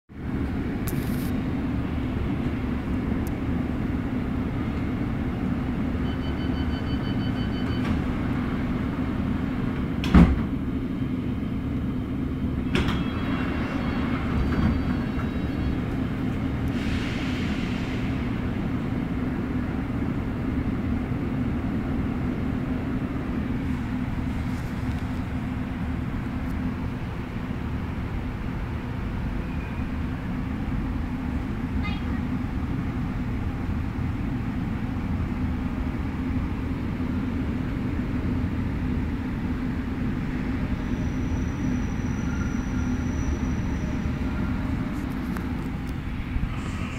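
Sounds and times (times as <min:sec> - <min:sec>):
train running hum: 0:00.1 - 0:46.9
electronic beeps: 0:06.0 - 0:07.9
brief hiss: 0:16.7 - 0:18.3.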